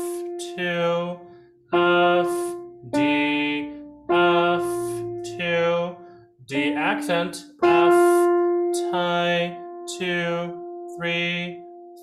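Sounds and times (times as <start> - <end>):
man singing along: 0.0 - 1.2, 1.8 - 11.6
slow piano melody: 0.0 - 12.0.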